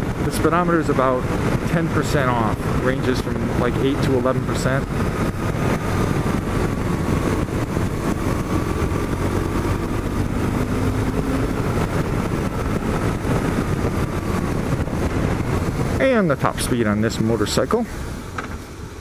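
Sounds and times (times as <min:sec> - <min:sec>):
motorcycle engine cruising: 0:00.0 - 0:19.0
wind and road noise: 0:00.0 - 0:19.0.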